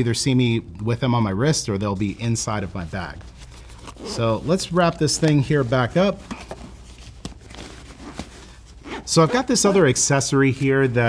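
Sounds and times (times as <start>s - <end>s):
nylon bag rustling: 3.2s - 10.8s.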